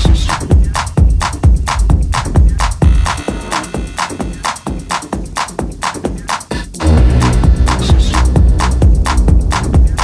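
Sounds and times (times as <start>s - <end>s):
heavy bassline: 0.0s - 10.0s
techno kick drum: 0.0s - 10.0s.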